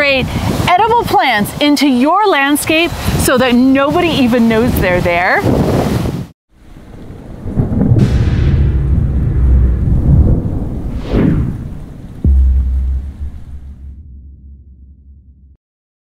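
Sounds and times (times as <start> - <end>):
deep rumble: 6.5 - 15.6
sharp low hit: 6.6 - 15.6
whoosh: 6.6 - 15.6.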